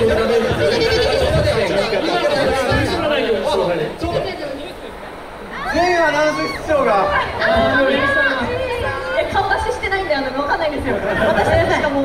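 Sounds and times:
people talking into microphones: 0.0 - 12.0.

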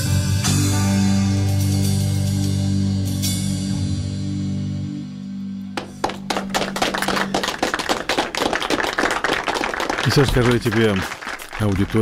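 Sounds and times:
people clapping: 5.8 - 12.0.

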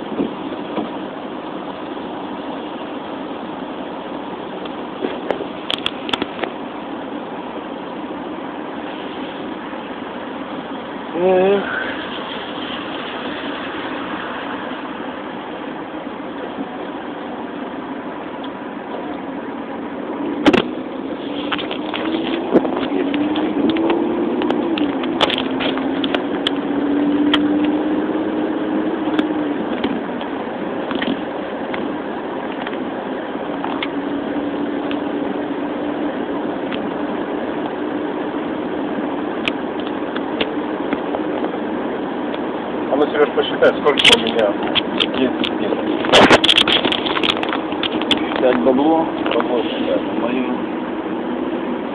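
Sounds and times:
car engine from inside cabin: 0.0 - 51.9.

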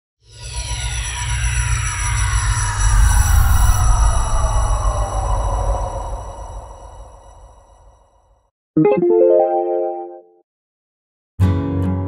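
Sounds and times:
tones gliding downward: 8.8 - 10.2.

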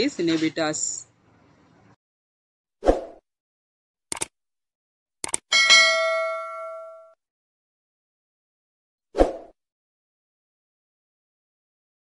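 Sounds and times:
notification bell ding: 5.5 - 7.2.

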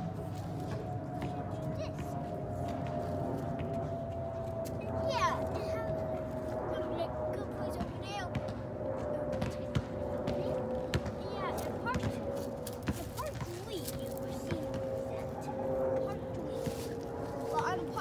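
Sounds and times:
steady low hum: 0.0 - 18.0
light taps and scuffs: 9.3 - 15.2.

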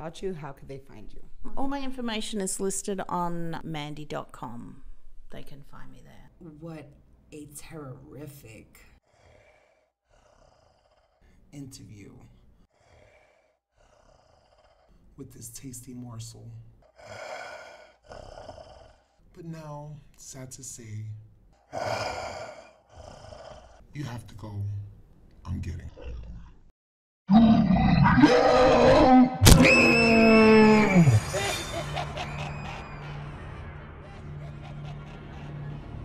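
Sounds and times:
woman speaking: 0.0 - 8.9
monstrous growl: 9.1 - 11.4, 12.7 - 15.0, 16.8 - 19.2, 21.7 - 23.8, 25.8 - 26.7, 27.3 - 31.6.

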